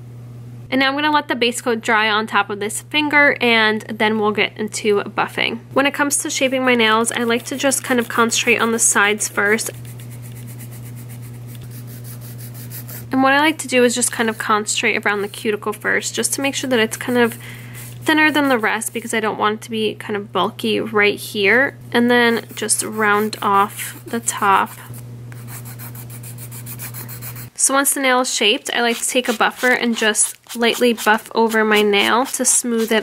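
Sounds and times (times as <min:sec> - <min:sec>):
steady low hum: 0:00.0 - 0:33.0
nail file rasping on nail: 0:06.4 - 0:13.1, 0:22.4 - 0:24.8, 0:25.4 - 0:27.5, 0:28.8 - 0:33.0.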